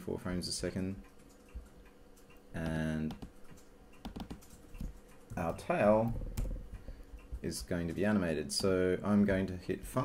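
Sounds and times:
computer mouse clicks: 1.0 - 7.4
keyboard taps: 2.6 - 7.7.

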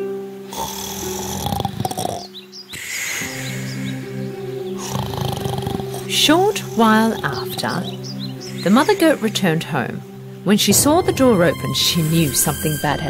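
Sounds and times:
background music: 0.0 - 13.0
cartoon snoring: 0.5 - 3.8, 4.8 - 7.9.

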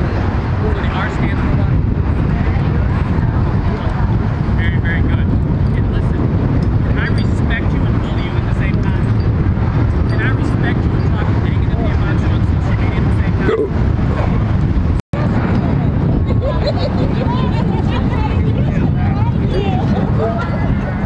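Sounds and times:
wind rumbling on microphone: 0.0 - 21.0
indistinct crowd voices: 15.2 - 21.0.

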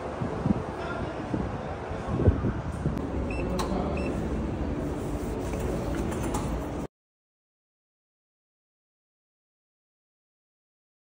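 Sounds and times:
ticket reader short high beeps: 3.3 - 4.2.

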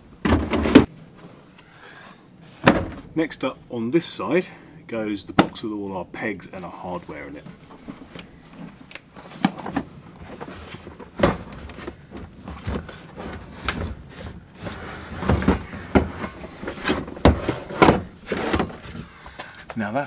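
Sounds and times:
plastic box knocking and scraping: 0.2 - 0.9, 9.2 - 19.1.

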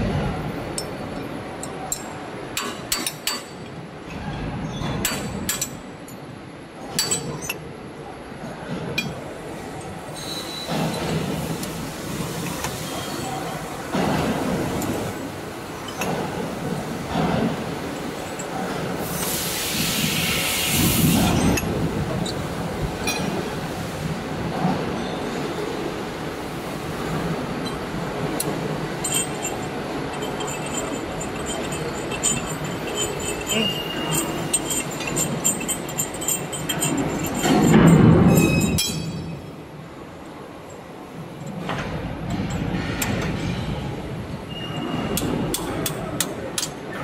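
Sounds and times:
metal parts clinking and scraping: 0.7 - 7.7, 8.9 - 23.4, 27.1 - 39.4
metallic scraping hiss: 17.8 - 21.7, 26.6 - 38.7
light metal clinks: 27.6 - 39.4.

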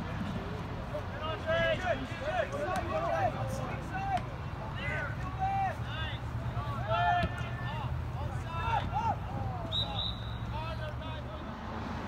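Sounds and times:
people shouting: 6.6 - 10.1
referee's whistle blast: 9.7 - 10.6.

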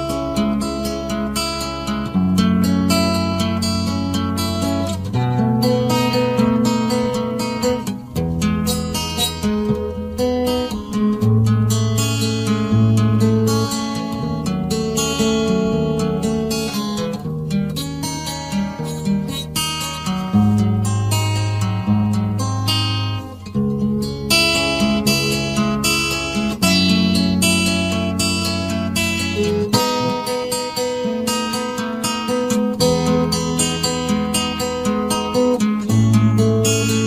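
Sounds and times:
acoustic guitar music: 0.0 - 37.0.

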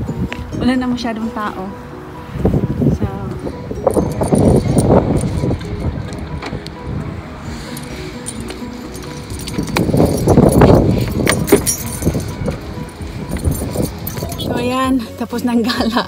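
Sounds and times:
rough rumbling noise: 1.9 - 14.6
car key jangling: 3.5 - 6.9, 7.7 - 14.8.

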